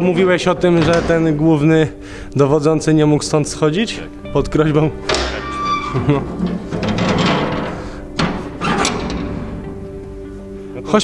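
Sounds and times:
iron lid clanking: 0:04.9 - 0:10.2
metal hinges scraping and squealing: 0:04.9 - 0:10.3.

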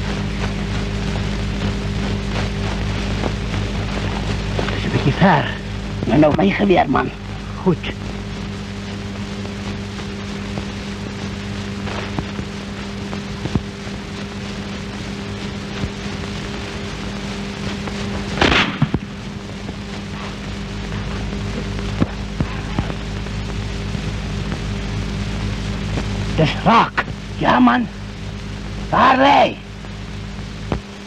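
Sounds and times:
faint crackle: 0:00.0 - 0:31.0
film soundtrack hiss and hum: 0:00.0 - 0:31.0
rifle shot: 0:18.4 - 0:19.1.

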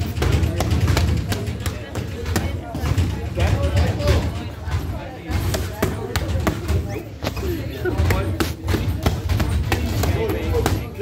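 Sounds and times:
boxing gloves hitting mitts: 0:00.0 - 0:11.0.

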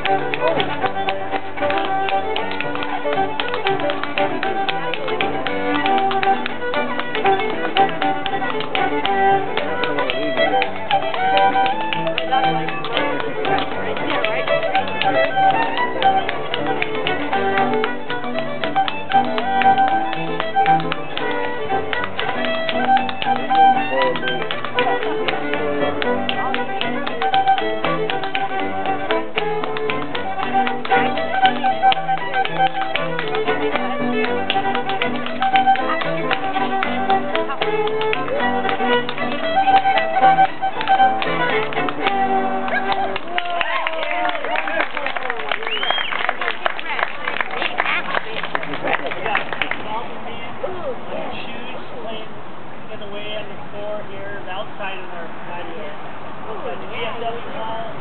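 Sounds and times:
dance steps tapping on floor: 0:00.0 - 0:43.2
fiddle and piano dance tune: 0:00.0 - 0:49.8.

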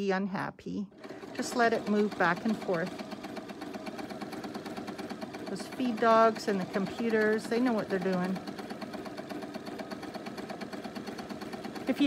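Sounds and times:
sewing machine running: 0:00.9 - 0:12.0.

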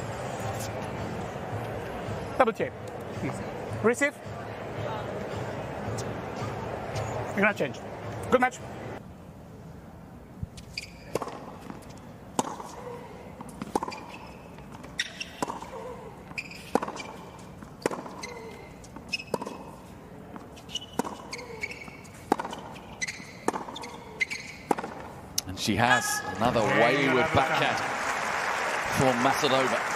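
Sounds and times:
shoes squeaking on court: 0:10.5 - 0:25.3
tennis ball bouncing: 0:10.6 - 0:25.2
racket hitting tennis ball: 0:10.7 - 0:25.2.

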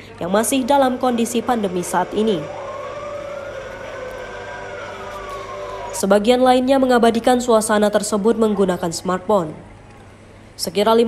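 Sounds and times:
low background hum: 0:00.0 - 0:11.0
siren wailing: 0:00.7 - 0:06.7.

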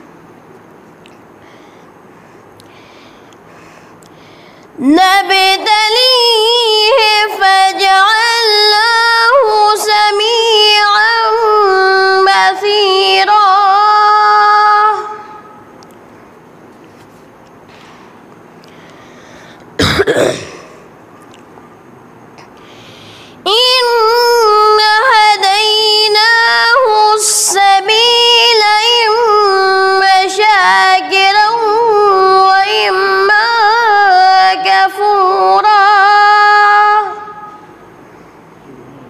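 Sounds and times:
boy chanting recitation: 0:04.8 - 0:15.7, 0:23.5 - 0:37.7, 0:38.6 - 0:39.0
boy clearing his throat: 0:19.8 - 0:20.9.

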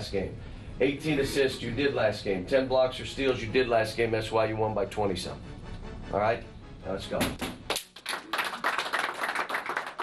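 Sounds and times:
group clapping hands quickly: 0:07.4 - 0:10.0.

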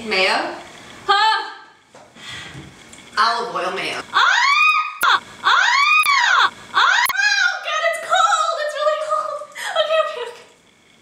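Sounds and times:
woman squealing laughter: 0:04.1 - 0:07.4
woman shrieking: 0:04.1 - 0:07.6.

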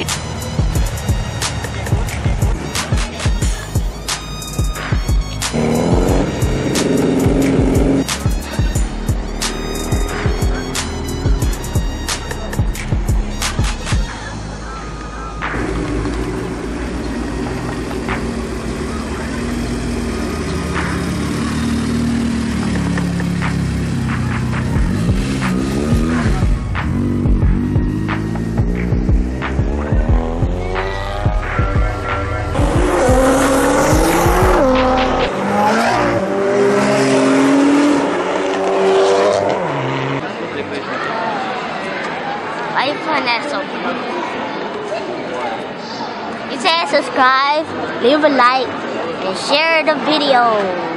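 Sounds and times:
sports car engines revving: 0:05.2 - 0:12.8, 0:14.6 - 0:40.7.

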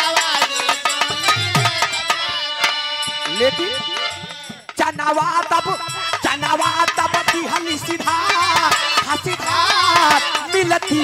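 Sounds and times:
folk band playing: 0:00.0 - 0:11.0.

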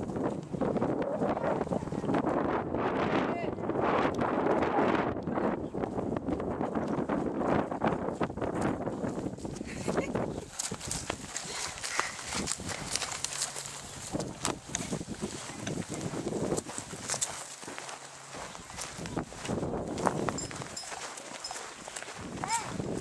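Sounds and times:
footsteps on dirt and grass: 0:05.7 - 0:23.0.

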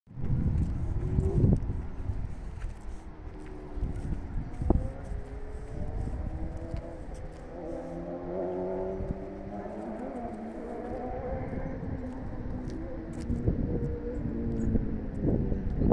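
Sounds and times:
low rumble: 0:00.1 - 0:15.9
vehicle engine running: 0:00.2 - 0:15.9.

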